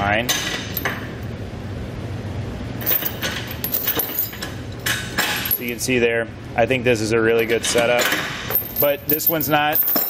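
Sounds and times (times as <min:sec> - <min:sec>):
steady low hum: 0:00.0 - 0:10.0
chain links clinking: 0:02.8 - 0:04.5, 0:08.4 - 0:10.0.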